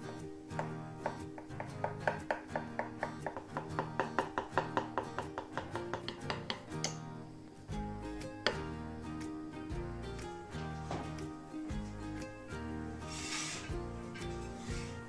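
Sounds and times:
guitar music: 0.0 - 15.0.

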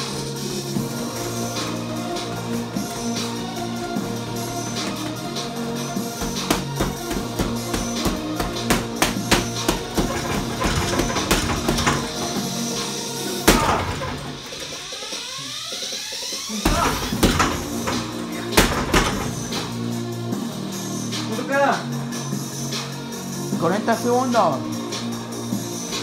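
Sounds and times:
music with sustained tones: 0.0 - 26.0
punches on heavy bag: 6.2 - 12.4, 13.5 - 14.4.

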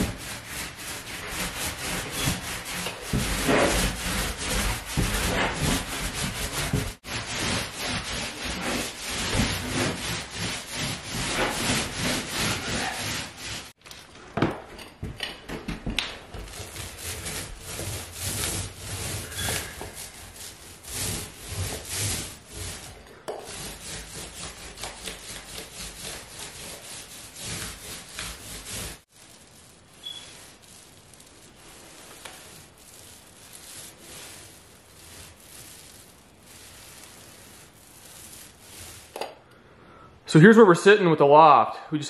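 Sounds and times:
paint roller rubbing strokes: 0.0 - 13.8, 15.7 - 39.4.

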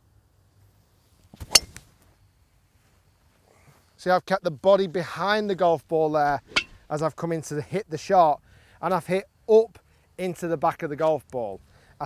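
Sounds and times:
golf club striking ball: 1.4 - 1.8, 6.4 - 6.9.

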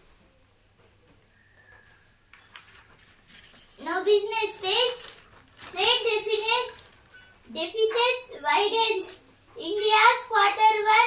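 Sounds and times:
boy reading aloud: 2.7 - 11.0.

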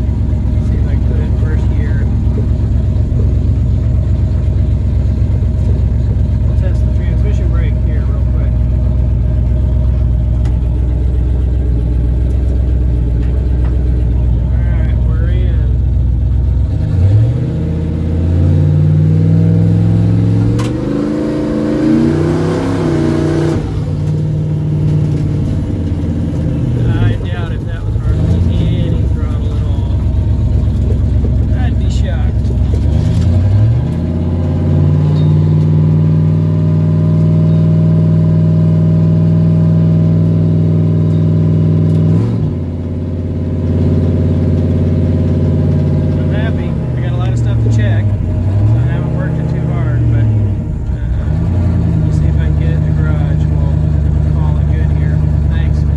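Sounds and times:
car engine revving: 0.0 - 55.9.

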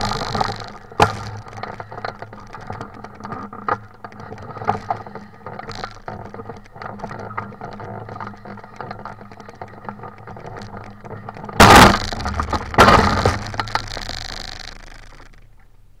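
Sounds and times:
hang glider frame rattling: 0.0 - 15.7.

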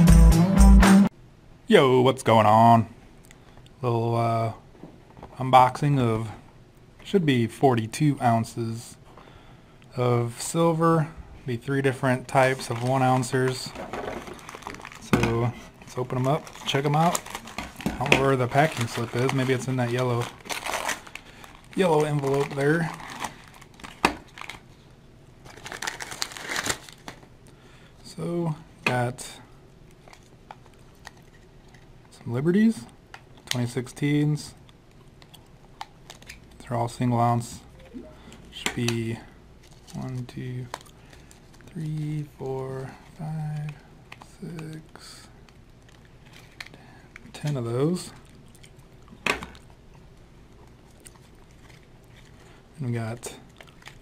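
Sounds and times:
plastic wrap crackling: 12.3 - 24.8, 25.4 - 27.3, 50.5 - 54.0
paper crinkling and tearing: 12.4 - 24.8, 25.4 - 27.3, 50.9 - 54.0
faint clicks and rustles: 39.6 - 52.6.

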